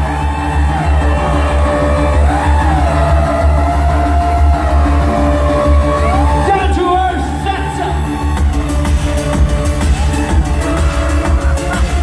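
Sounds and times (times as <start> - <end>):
live synthpop music: 0.0 - 12.0.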